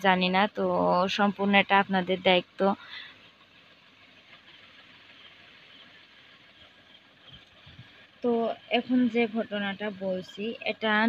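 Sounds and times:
faint outdoor background noise: 0.0 - 11.0.

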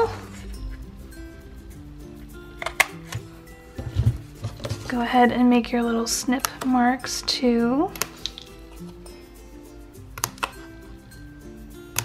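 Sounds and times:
soft background music: 0.0 - 12.0
scissors snipping cardstock: 6.4 - 6.7, 7.9 - 8.9, 10.1 - 10.6.

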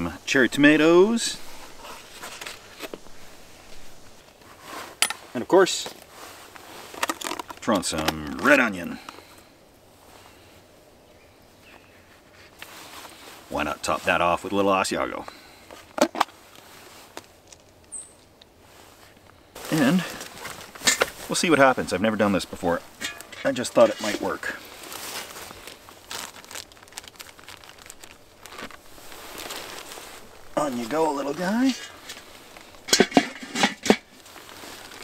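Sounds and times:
metal grill lid clanking: 23.0 - 23.5, 32.9 - 34.0.

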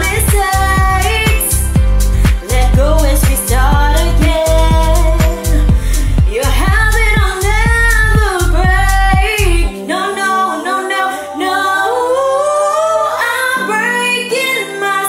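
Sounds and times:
karaoke backing track: 0.0 - 15.0
woman singing: 0.0 - 15.0.

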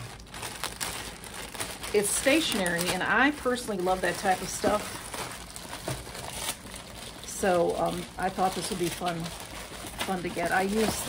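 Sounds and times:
packaging crinkling: 0.0 - 11.0.

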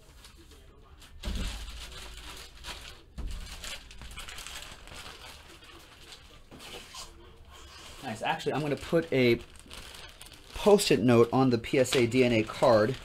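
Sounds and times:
plastic and paper rustling: 0.0 - 13.0.

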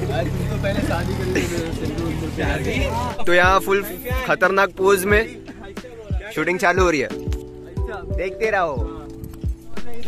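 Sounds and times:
vehicle engine running: 0.0 - 5.4.

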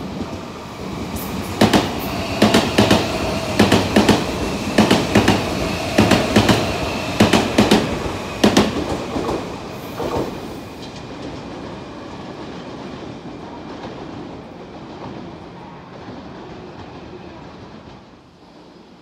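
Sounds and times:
train running hum: 0.0 - 19.0
train wheels clattering over rail joints: 1.5 - 11.5.

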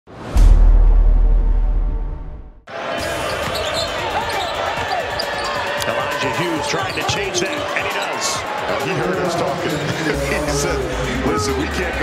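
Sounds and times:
deep intro boom: 0.2 - 2.7
crowd murmur: 2.7 - 12.0
sneaker squeaks: 3.3 - 5.6, 6.8 - 8.1.

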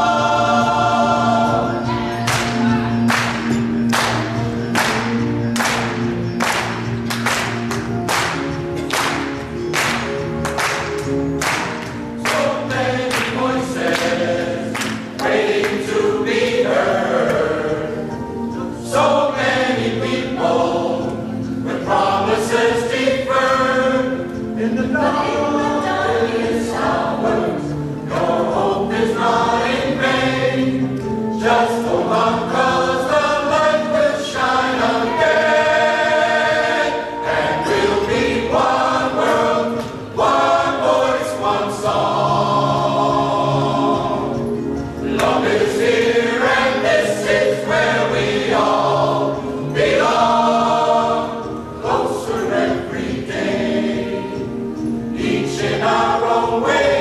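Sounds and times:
mixed chorus singing: 0.0 - 57.0.

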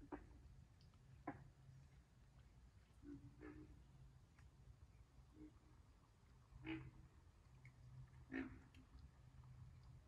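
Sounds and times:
baby alligators croaking: 0.0 - 0.5, 1.1 - 1.6, 6.6 - 7.1, 8.2 - 9.0.

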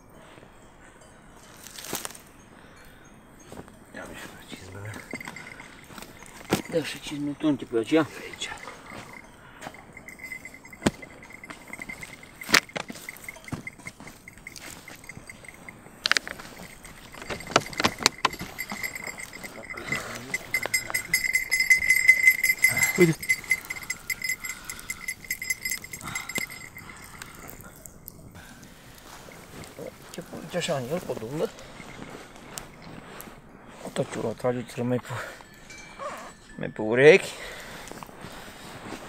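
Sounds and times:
coat rustling: 4.4 - 27.4, 28.8 - 34.9.

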